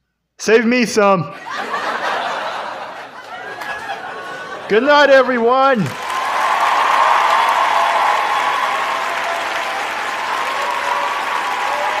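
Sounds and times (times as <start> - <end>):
audience applauding: 5.8 - 12.0.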